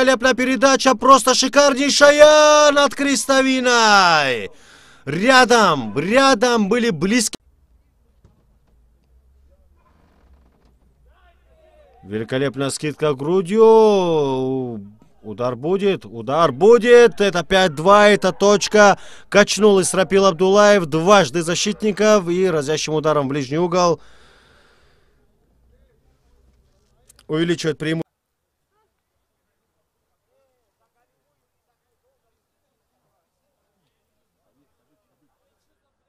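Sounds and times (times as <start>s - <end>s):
distant shouting voices: 0.0s - 7.3s, 11.0s - 24.0s.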